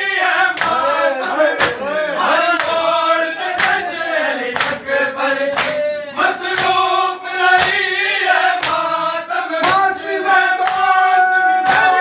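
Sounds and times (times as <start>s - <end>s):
crowd of men chanting: 0.0s - 12.0s
sharp chest-beating slaps: 1.6s - 1.8s, 3.6s - 3.8s, 4.6s - 4.8s, 5.5s - 5.8s, 6.5s - 6.8s, 7.6s - 7.9s, 8.6s - 8.9s, 9.6s - 10.0s, 11.6s - 12.0s.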